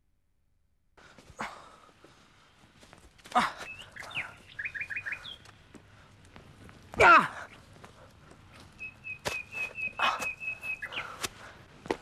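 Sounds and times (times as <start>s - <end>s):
birds chirping: 1.5s - 11.7s.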